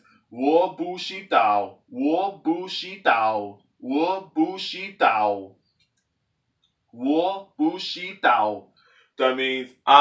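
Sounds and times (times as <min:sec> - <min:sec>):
man speaking: 0:00.3 - 0:05.5, 0:07.0 - 0:08.6, 0:09.2 - 0:10.0.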